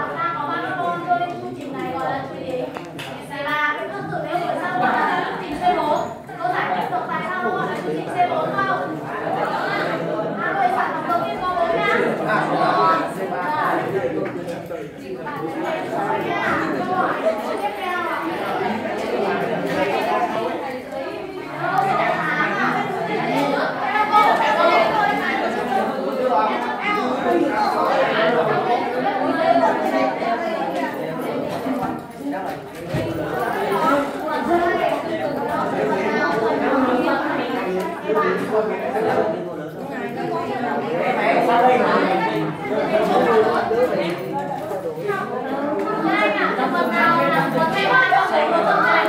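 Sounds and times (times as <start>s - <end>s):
students chattering: 0.0s - 49.0s.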